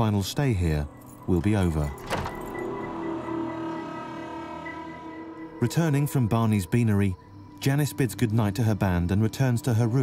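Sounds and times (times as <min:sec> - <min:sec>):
door latch click: 0:02.0 - 0:02.6.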